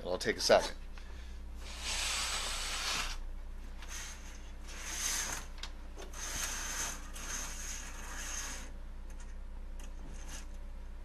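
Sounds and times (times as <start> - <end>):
curtain rings scraping along rod: 3.9 - 5.5, 6.1 - 8.7.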